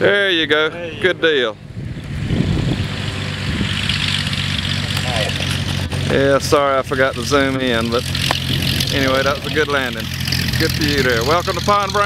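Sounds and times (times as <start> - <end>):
plane engine and propeller running: 0.6 - 12.0.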